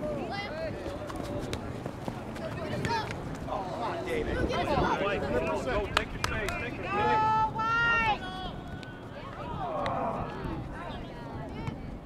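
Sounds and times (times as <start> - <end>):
voices shouting outdoors: 0.0 - 12.0.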